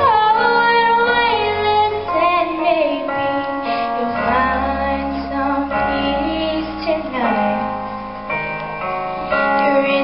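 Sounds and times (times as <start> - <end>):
woman singing slow song: 0.0 - 7.7, 9.6 - 10.0
musical accompaniment: 0.0 - 10.0.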